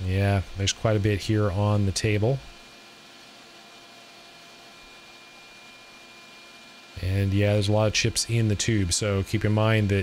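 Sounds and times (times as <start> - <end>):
light steady hum: 0.0 - 10.0.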